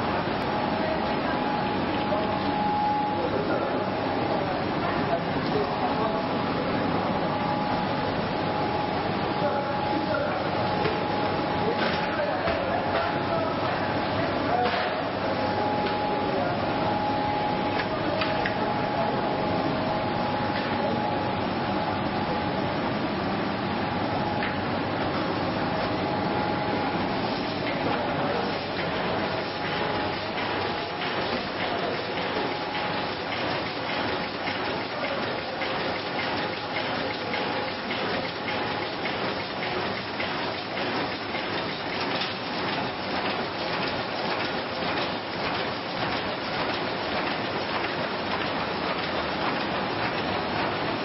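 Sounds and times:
printing press mechanical din: 0.0 - 51.0.

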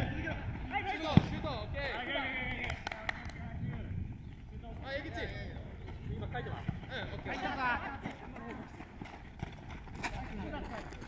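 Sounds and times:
low wind rumble: 0.0 - 11.0.

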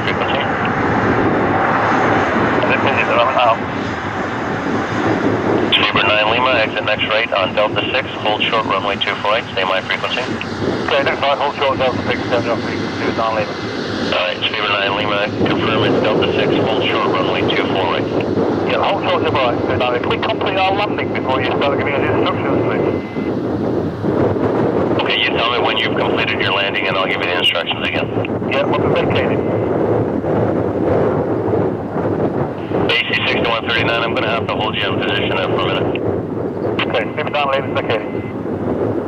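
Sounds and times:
radio voice talking: 0.0 - 0.9, 1.8 - 4.0, 5.6 - 23.3, 25.0 - 29.7, 32.6 - 36.0, 36.6 - 38.4
jet engine rush: 0.0 - 39.0.

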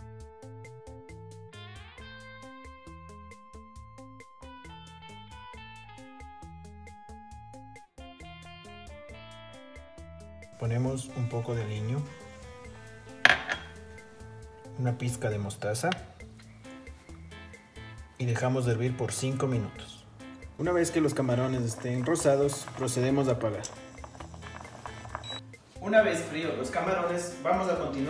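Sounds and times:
quiet background music: 0.0 - 28.0
metal spoon tapping pot: 13.3 - 13.8
cooktop electronic beep: 22.6 - 25.5.

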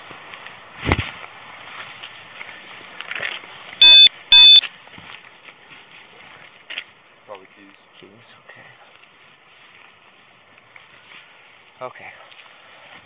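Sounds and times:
high electronic beeps: 3.8 - 4.6.

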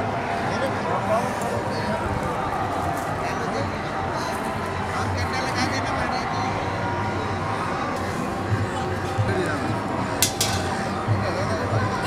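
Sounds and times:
background music: 0.0 - 12.0
crowd voices overlapping: 0.0 - 12.0.

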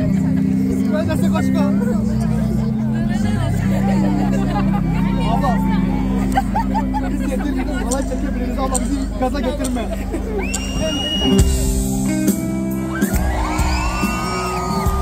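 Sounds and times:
loud crowd chatter: 0.0 - 15.0
rock band playing low chords: 0.0 - 15.0.

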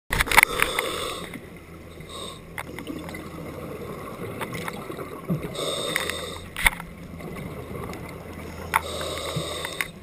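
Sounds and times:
underwater bubbling: 0.2 - 10.0
scuba regulator breathing hiss: 0.5 - 1.4, 5.6 - 6.5, 8.8 - 10.0.

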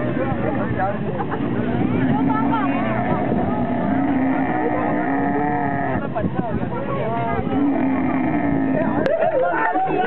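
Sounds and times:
camel calling: 1.7 - 6.0, 7.4 - 9.1.

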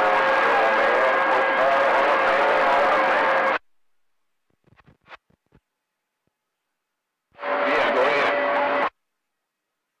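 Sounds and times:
faint garbled voices: 0.0 - 3.6
radio static: 0.0 - 3.6, 7.4 - 8.9.

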